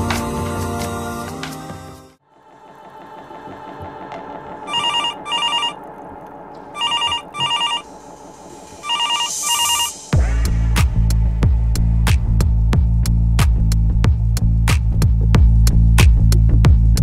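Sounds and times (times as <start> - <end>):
phone ringing with warbling tone: 4.7 - 5.8, 6.7 - 7.9, 8.8 - 10.0.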